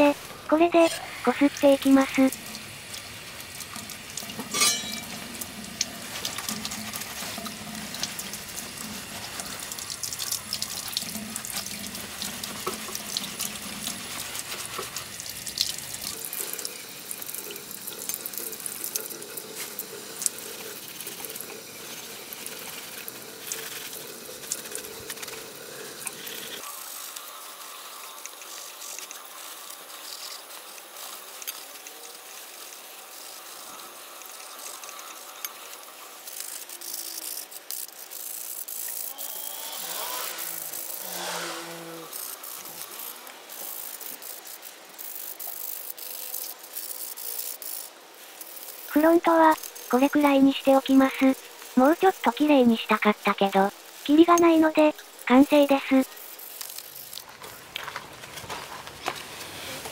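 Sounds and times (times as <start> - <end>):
water splashing on metal and concrete: 1.6 - 26.4
metal clinks and rattles: 4.5 - 5.2.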